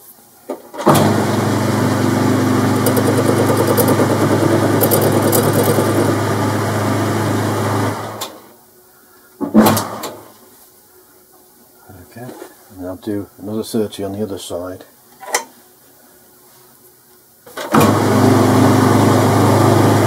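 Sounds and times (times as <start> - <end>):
lathe motor hum: 1.6 - 8.0
loud clatter: 2.6 - 6.3.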